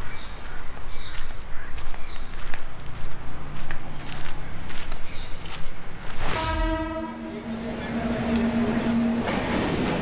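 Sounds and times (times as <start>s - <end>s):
train horn: 6.2s - 9.2s.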